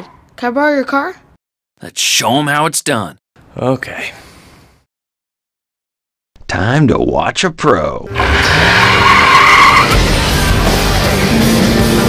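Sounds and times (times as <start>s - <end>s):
toy car tyre squeal: 8.1s - 10.0s.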